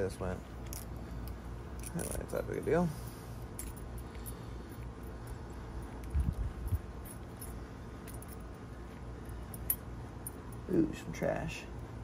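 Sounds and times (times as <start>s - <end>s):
small metallic clinks: 0.5s - 11.0s.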